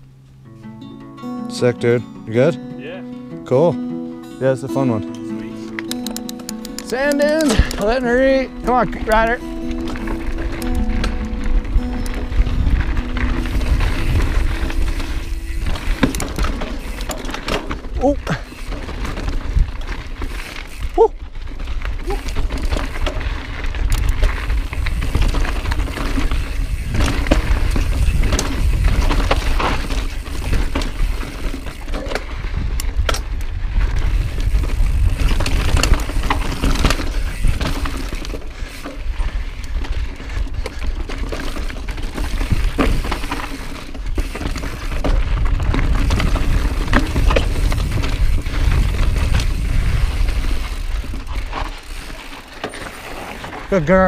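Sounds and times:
wind rumble on microphone: 10.4s - 16.6s, 20.8s - 31.2s, 32.2s - 38.3s, 44.0s - 51.7s
bike knocks and rattles: 13.5s - 20.8s, 21.9s - 33.4s, 34.0s - 39.0s, 39.8s - 53.6s.

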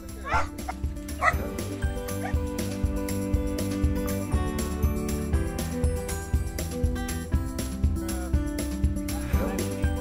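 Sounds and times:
background music with held notes: 0.0s - 10.0s
small dogs yipping: 0.2s - 1.4s, 2.1s - 2.4s.

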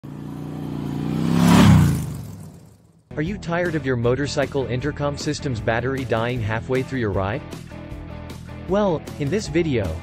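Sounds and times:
vehicle engine passing by: 0.0s - 3.0s.

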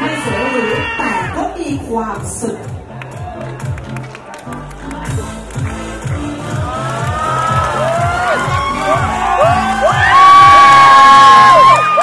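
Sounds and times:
music with steady beat: 1.4s - 11.7s
audience cheering and whooping: 6.4s - 12.0s.

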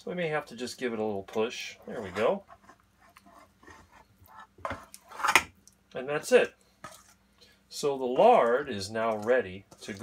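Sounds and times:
lard scraping and squishing: 1.7s - 5.4s, 6.8s - 7.2s.

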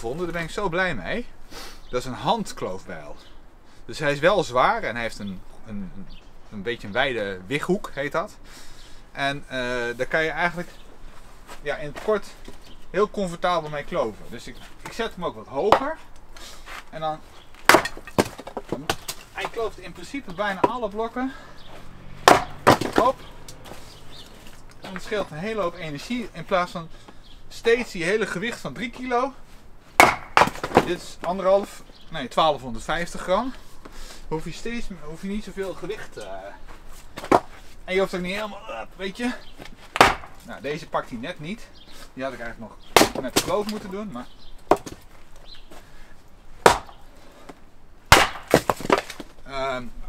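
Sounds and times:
axe splitting log: 15.6s - 16.0s, 17.6s - 19.7s, 22.2s - 23.8s, 30.0s - 31.1s, 37.2s - 37.5s, 39.9s - 40.5s, 42.9s - 43.9s, 44.6s - 45.0s, 46.6s - 47.0s, 48.1s - 49.3s.

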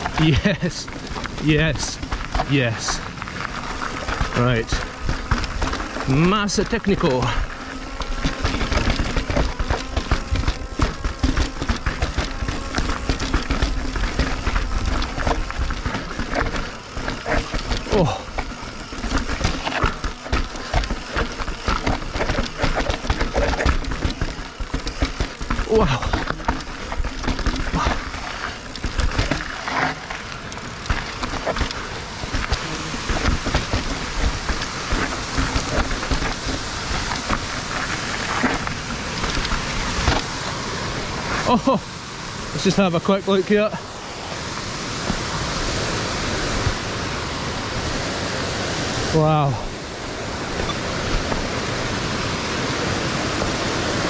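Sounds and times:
rider vocal noises: 0.0s - 3.2s, 4.0s - 30.0s, 32.5s - 34.1s, 41.3s - 42.0s
bike rattling over rocks: 0.0s - 47.4s.

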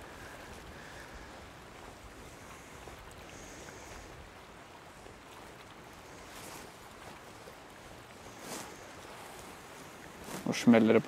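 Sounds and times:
small waves washing: 0.0s - 11.0s
water swishes: 0.0s - 11.0s.

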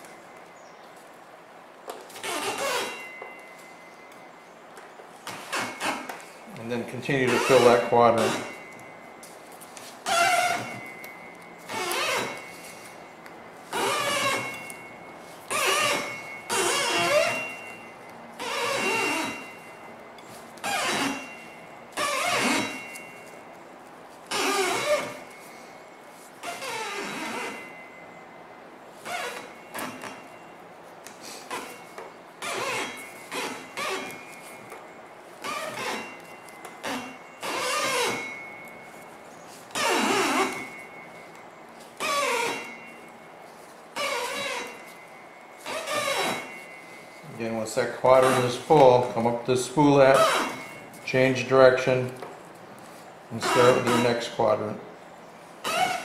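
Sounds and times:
string squeaking when pulled: 2.1s - 3.3s, 5.3s - 6.3s, 7.1s - 8.7s, 10.0s - 11.0s, 11.6s - 13.0s, 13.7s - 14.9s, 15.5s - 19.7s, 20.6s - 23.3s, 24.3s - 25.5s, 26.4s - 27.8s, 29.0s - 30.3s, 31.2s - 39.0s, 39.6s - 41.0s, 42.0s - 43.1s, 44.0s - 45.0s, 45.6s - 47.4s, 48.2s - 49.1s, 50.1s - 51.5s, 53.3s - 54.3s, 55.6s - 56.0s.

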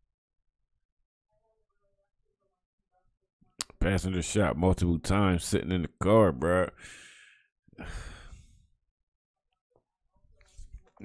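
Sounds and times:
man exhaling: 6.8s - 8.6s.

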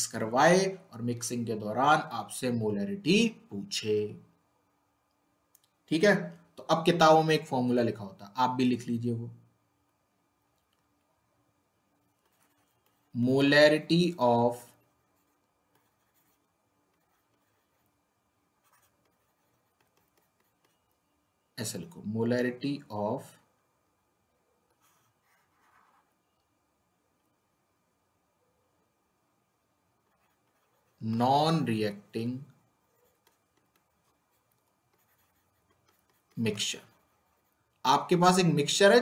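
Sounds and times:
stylus writing on a tablet: 9.6s - 21.5s, 24.3s - 26.6s, 29.8s - 38.1s
pen ticking on tablet: 18.7s - 20.9s.

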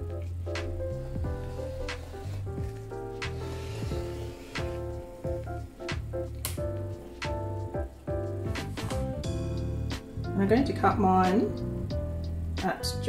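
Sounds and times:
plucked melody over low notes: 4.9s - 12.6s.

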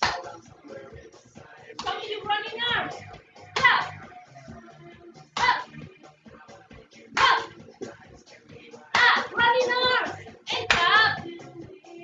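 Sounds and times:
sharp claps: 0.0s - 0.4s, 1.8s - 2.0s, 7.2s - 7.5s, 8.9s - 9.3s, 10.6s - 11.0s
workout music with singing: 0.0s - 12.0s.

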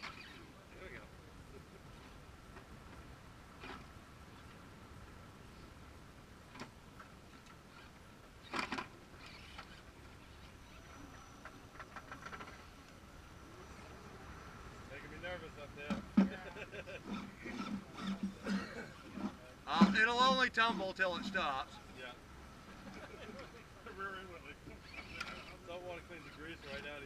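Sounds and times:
faint steady motor whine: 0.0s - 27.0s.

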